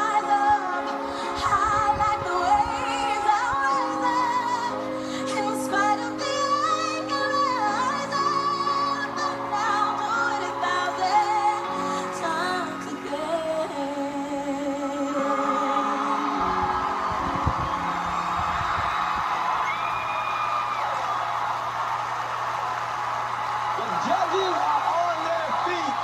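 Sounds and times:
girl singing a ballad: 0.0 - 18.0
audience cheering and applauding: 15.0 - 26.0.

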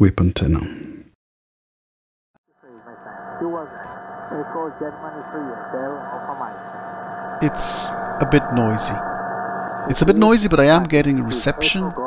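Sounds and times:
distant radio voice: 2.6 - 6.6, 7.4 - 9.1, 9.9 - 12.0
radio hiss and static: 2.6 - 12.0.

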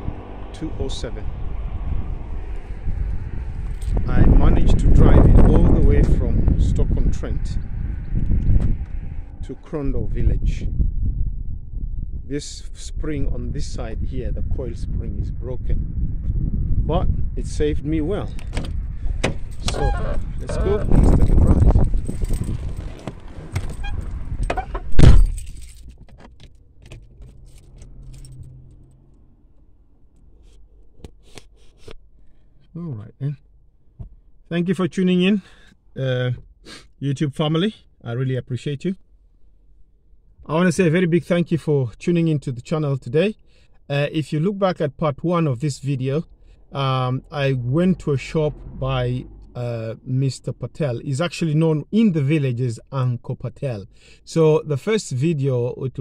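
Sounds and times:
wind buffeting microphone: 0.0 - 26.1, 46.6 - 50.7
faint street ambience: 0.0 - 56.0
clicks and rattles inside car: 18.3 - 28.4
car door thudding shut: 18.4 - 19.9, 24.5 - 25.4.

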